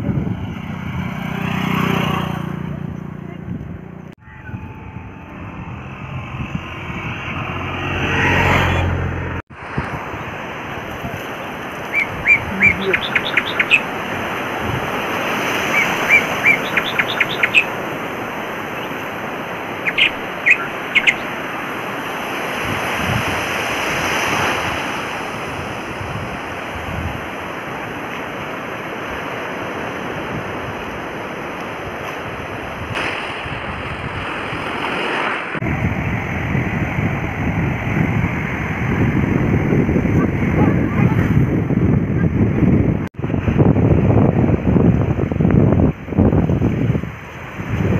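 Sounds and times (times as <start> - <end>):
wind buffeting microphone: 0.0 - 47.9
sea surf breaking: 4.4 - 41.5.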